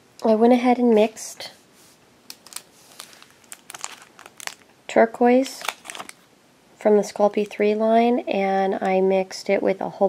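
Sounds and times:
plastic wrapper crinkling: 2.3s - 6.3s.

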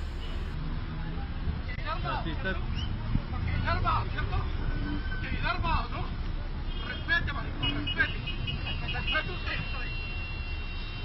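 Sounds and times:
traffic rumble: 0.0s - 9.0s.

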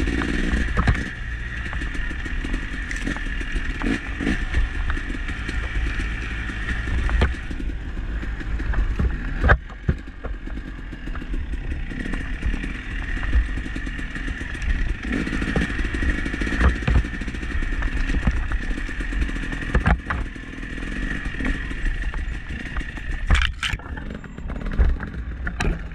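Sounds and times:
dirt bike engine running: 0.0s - 25.9s.

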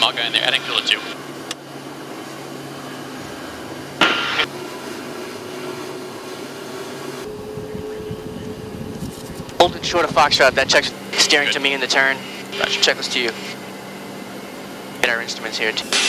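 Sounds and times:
jet engines humming: 0.0s - 16.0s.

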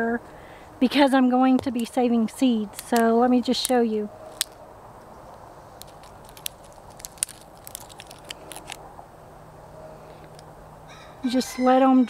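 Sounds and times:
dry bean pod cracking: 2.7s - 4.6s, 5.3s - 8.9s.

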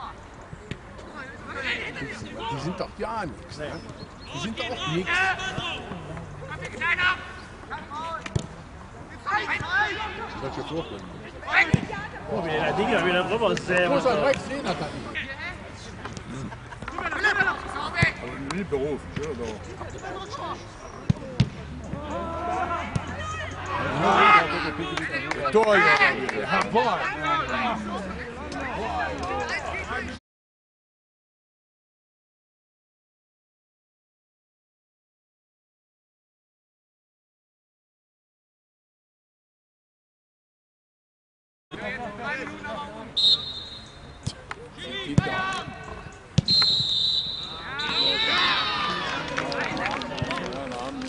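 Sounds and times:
players shouting: 4.3s - 8.3s, 9.1s - 30.1s, 41.8s - 51.0s
referee's whistle long blast: 43.2s - 44.0s, 46.5s - 48.4s.

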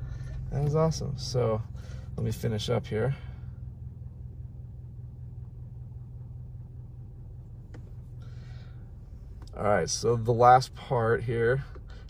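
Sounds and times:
car cabin rumble: 0.0s - 12.0s.

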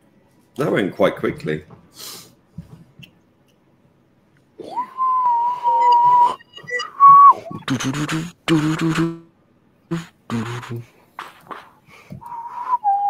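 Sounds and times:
whistle-like pure tone: 4.6s - 7.9s, 12.2s - 13.0s
buzzy low-pitched tones: 5.9s - 9.3s, 9.9s - 10.9s.

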